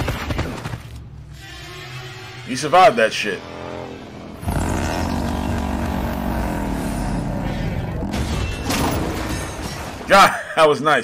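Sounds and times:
loud mechanical roar: 2.5 - 9.2.

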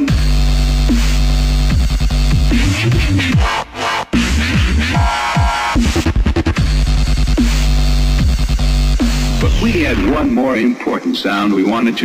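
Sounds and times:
dubstep music: 0.0 - 12.0
downward-sliding bass swoops: 5.8 - 10.6
deep bass note: 6.6 - 10.5.

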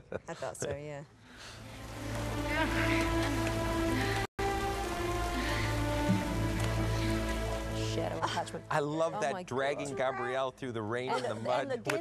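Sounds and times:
rain hiss: 1.2 - 9.9
music with long held notes: 1.8 - 9.0.

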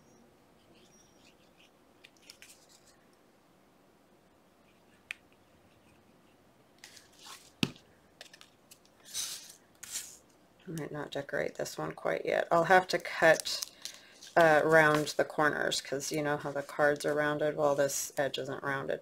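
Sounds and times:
paper cards rustling: 1.2 - 3.0, 6.8 - 10.2, 13.2 - 17.9.

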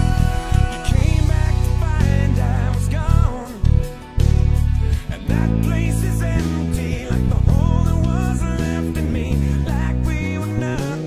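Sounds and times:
backing song with singing voice: 0.0 - 11.0
electric bass playing: 0.0 - 11.0.

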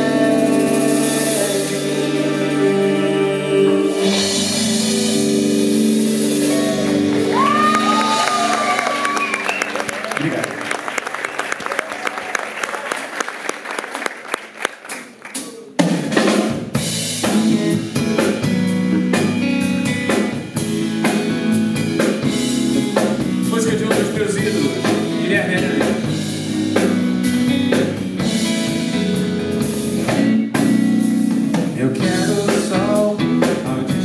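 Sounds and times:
live pop-soul band: 0.0 - 11.5, 15.4 - 34.0
audience cheering: 6.4 - 15.8
applause: 6.9 - 15.8
whistles: 9.0 - 10.0.

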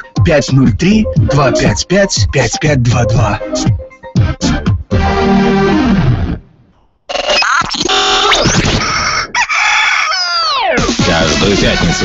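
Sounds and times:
background music: 0.0 - 6.7, 10.6 - 12.0
rooster crowing: 8.9 - 10.8.

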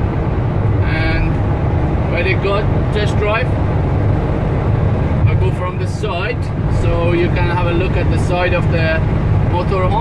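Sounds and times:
car road and engine drone: 0.0 - 10.0.

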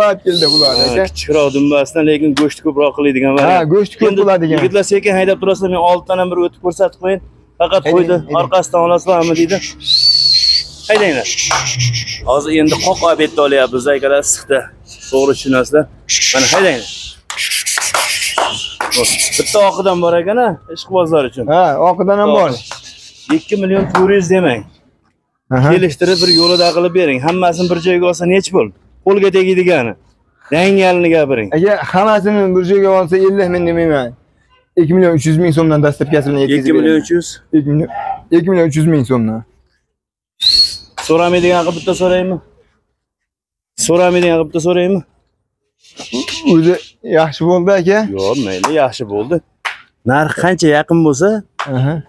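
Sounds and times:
man speaking: 0.0 - 9.8, 10.9 - 11.5, 12.2 - 17.0, 18.9 - 22.7, 23.3 - 24.7, 25.5 - 34.2, 34.8 - 39.5, 41.1 - 42.5, 43.8 - 45.1, 46.0 - 52.0
human whistle: 0.3 - 1.7, 9.2 - 13.0, 14.9 - 15.3, 16.1 - 19.7, 22.5 - 23.6, 26.0 - 26.8, 40.4 - 41.1, 45.8 - 47.0.

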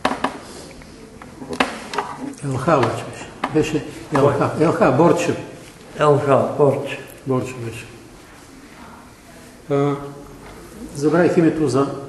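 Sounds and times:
sharp knocks: 0.0 - 0.4, 2.7 - 4.4
faint murmur of voices: 0.4 - 12.0.

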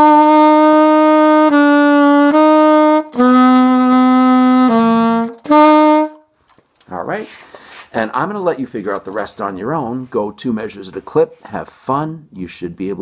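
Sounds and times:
saxophone playing held notes: 0.0 - 6.3
player breathing: 7.3 - 7.9.

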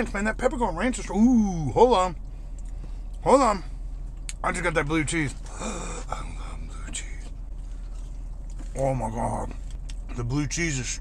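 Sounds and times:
low steady hum: 0.0 - 11.0
man chewing: 5.4 - 8.8, 9.5 - 10.2
man exhaling and gasping: 5.5 - 6.6.

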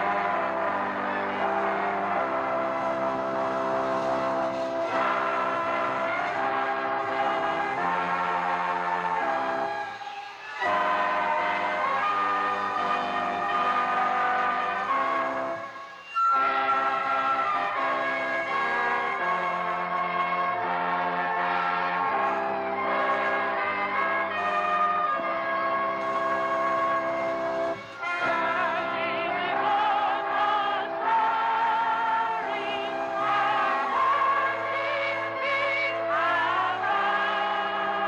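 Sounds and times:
keyboard sustained chords: 0.0 - 38.0.

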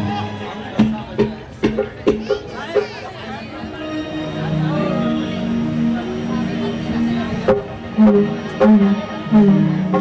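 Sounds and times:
stage band held notes: 0.0 - 10.0.

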